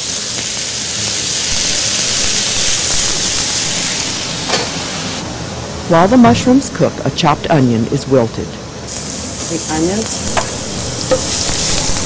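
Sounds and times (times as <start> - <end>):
mushrooms sizzling in a pan: 0.0 - 5.2, 8.9 - 12.0.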